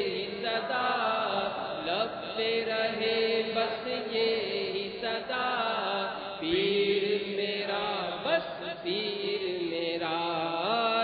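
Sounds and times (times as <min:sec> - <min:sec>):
man chanting unaccompanied: 0:00.0 - 0:11.0.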